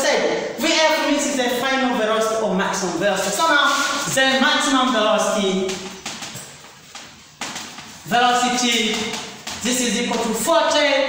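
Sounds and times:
chalk scratching on a blackboard: 0:03.2 - 0:10.4.

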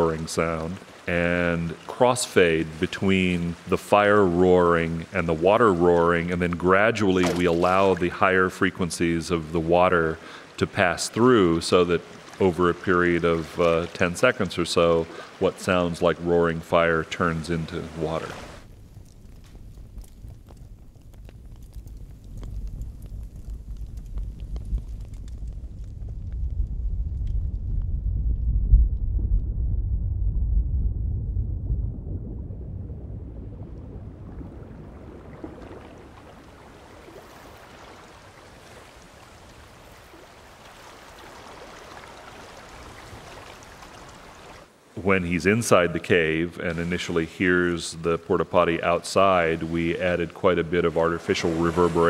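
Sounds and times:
water lapping: 0:00.0 - 0:18.7, 0:34.1 - 0:52.0
fire roaring and crackling: 0:00.0 - 0:52.0.

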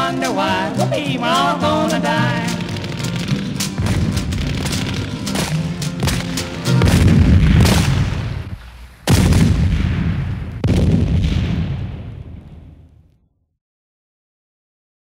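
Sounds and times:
sharp cracks: 0:01.4 - 0:13.0
heavy explosion booms: 0:02.8 - 0:13.0.

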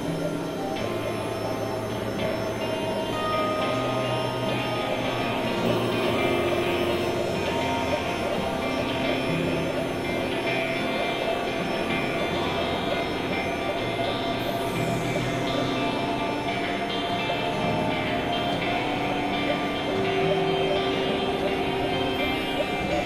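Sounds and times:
synthesizer drones: 0:00.0 - 0:23.0.

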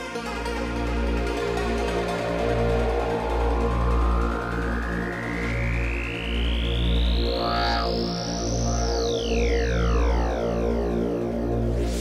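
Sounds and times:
low sustained synth bass: 0:00.1 - 0:12.0
synth sweep rising in pitch: 0:01.3 - 0:12.0.

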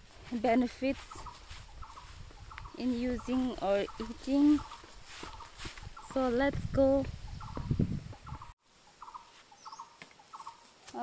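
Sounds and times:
birds calling: 0:00.0 - 0:11.0
thin high bird chirp: 0:07.4 - 0:10.7.

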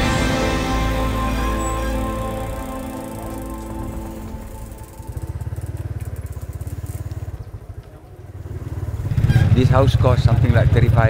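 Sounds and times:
background music: 0:00.0 - 0:06.0
motorcycle engine running: 0:00.0 - 0:11.0.

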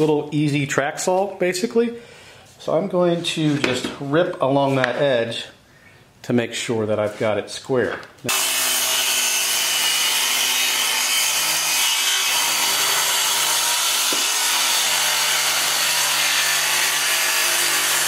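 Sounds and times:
circular saw cutting plywood: 0:08.3 - 0:18.0.

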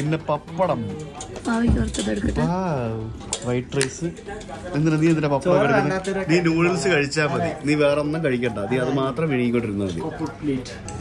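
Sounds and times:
people talking: 0:01.5 - 0:02.8.

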